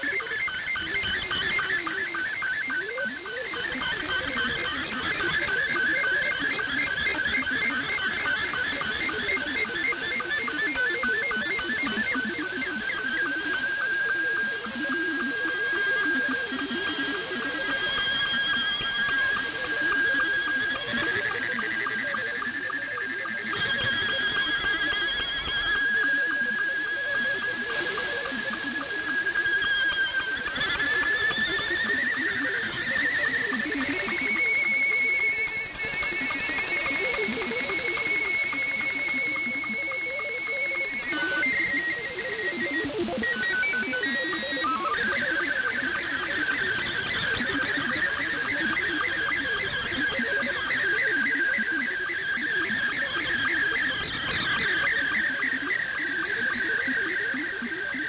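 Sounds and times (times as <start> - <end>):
warbling data tones: 24.8 - 48.6
radio image tone whistle: 32.7 - 42.6.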